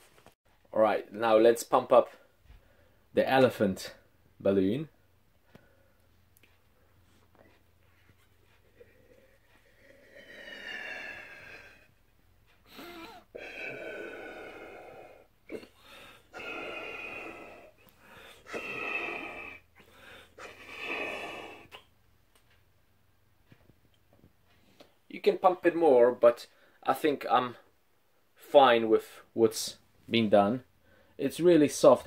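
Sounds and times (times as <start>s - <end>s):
man blowing into balloon: 12.7s - 21.8s.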